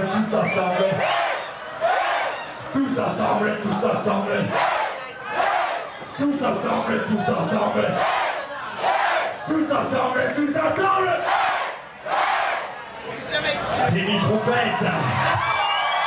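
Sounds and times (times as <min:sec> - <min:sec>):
crowd chanting in unison: 0:01.0 - 0:02.4, 0:04.0 - 0:06.1, 0:07.3 - 0:09.5, 0:11.0 - 0:13.0.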